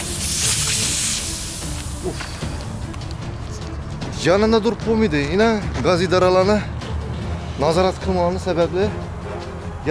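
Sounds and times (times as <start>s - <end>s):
gas hissing from pipe: 0.0s - 2.7s.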